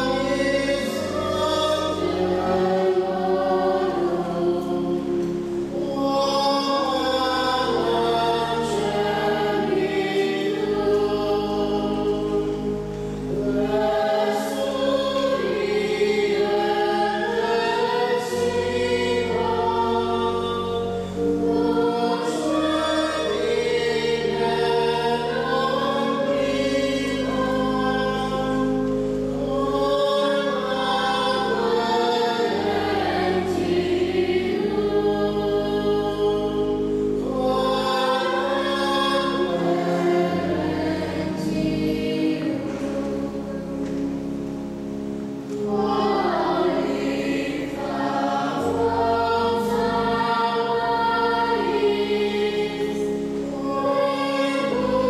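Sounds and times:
choir singing sacred music: 0.0s - 55.0s.

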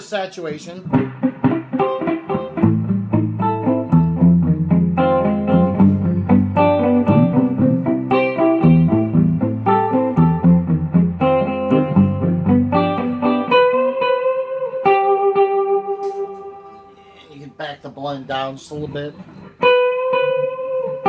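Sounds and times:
clean electric guitar with delay: 0.8s - 17.6s, 19.1s - 21.0s.

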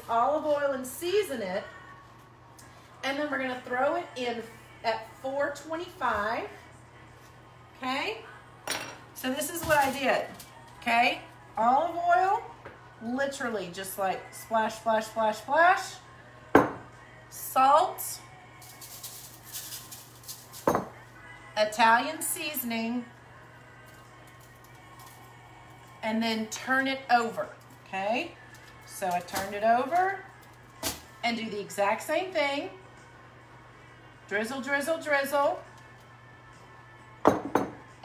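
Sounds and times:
bottles set down on wooden countertop: 16.6s - 16.9s, 20.7s - 21.0s, 37.3s - 37.8s
salt grains rattling: 18.6s - 20.6s.

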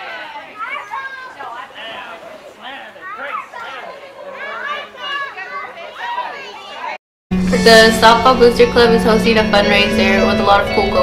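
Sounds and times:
young voices chattering: 0.0s - 7.0s, 7.6s - 11.0s.

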